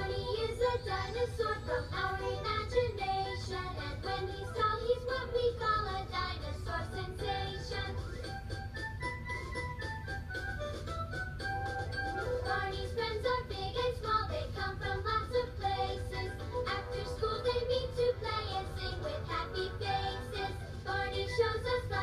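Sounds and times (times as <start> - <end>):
bright bouncy musical backing: 0.0 - 22.0.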